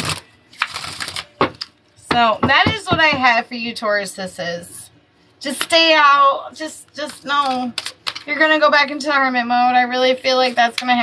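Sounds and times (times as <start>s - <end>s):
cards riffling: 0.0s - 1.8s.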